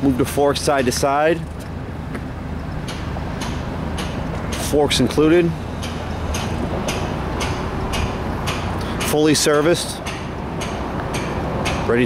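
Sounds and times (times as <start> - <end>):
forklift engine hum: 0.0 - 12.0.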